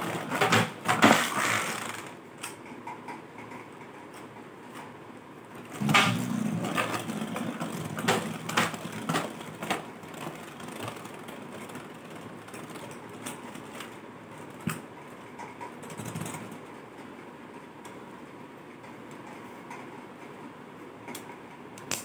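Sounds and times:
spinning top whirring: 0:00.0 - 0:02.3, 0:05.6 - 0:14.0.

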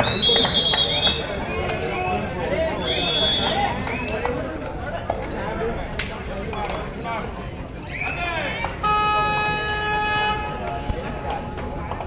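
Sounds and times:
crowd noise: 0:00.0 - 0:12.0
horn steady note: 0:08.8 - 0:11.6.

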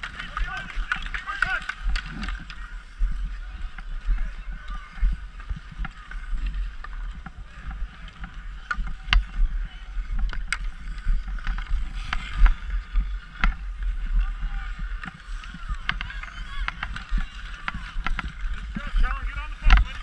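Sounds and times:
hockey sticks and puck clacking: 0:00.0 - 0:02.7, 0:03.6 - 0:20.0
ice skates scraping on ice: 0:00.0 - 0:20.0.

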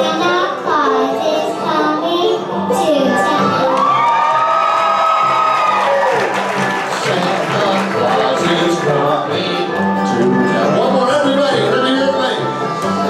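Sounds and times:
child singing into microphone: 0:00.0 - 0:03.7
live band accompaniment: 0:00.0 - 0:13.0
children shouting and cheering: 0:03.0 - 0:07.3.

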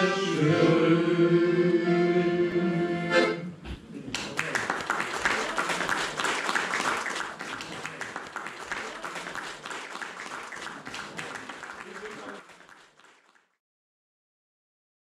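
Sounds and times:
men's choir held chord: 0:00.0 - 0:03.2
audience applauding: 0:04.1 - 0:13.6.

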